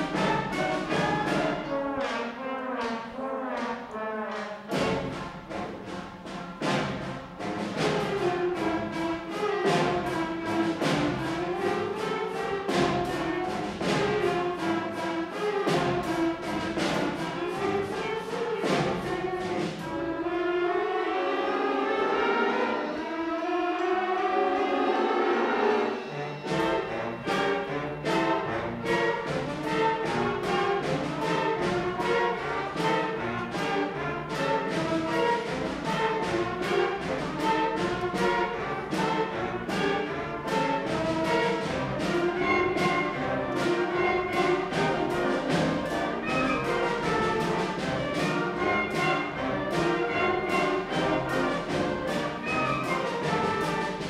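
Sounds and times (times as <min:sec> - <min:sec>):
concert band playing: 0:00.0 - 0:54.0
low brass: 0:00.0 - 0:54.0.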